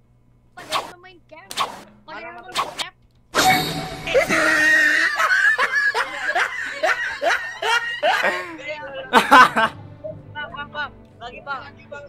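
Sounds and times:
young men laughing: 4.0s - 10.0s.

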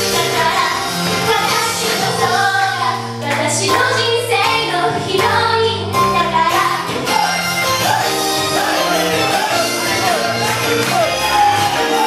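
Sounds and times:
girls singing into microphones: 0.0s - 6.9s
pop backing track: 0.0s - 12.0s.

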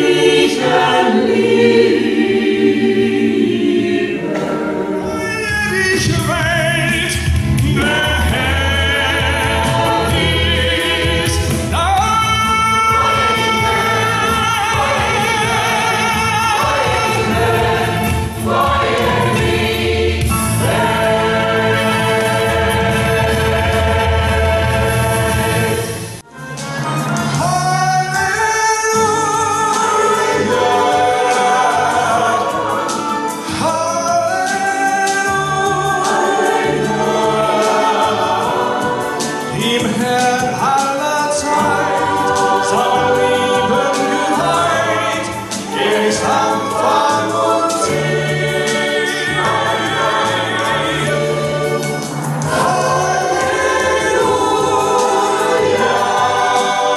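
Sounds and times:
mixed choir singing: 0.0s - 26.2s, 26.8s - 56.9s.

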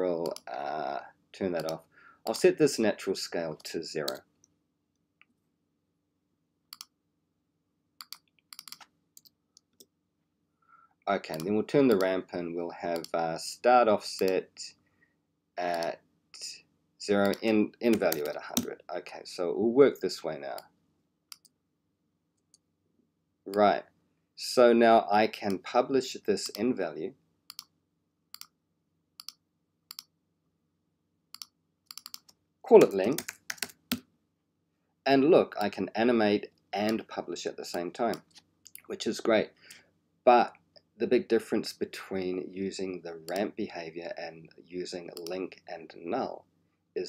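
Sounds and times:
mouse and keyboard clicks: 8.0s - 9.9s, 11.3s - 12.1s, 28.3s - 28.5s, 29.2s - 30.1s, 31.3s - 32.4s.

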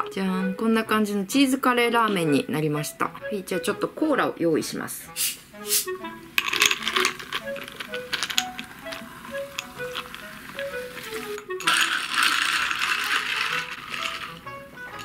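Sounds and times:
soda fizzing hiss: 5.2s - 6.0s
ice cracking and crackling: 6.4s - 15.0s.

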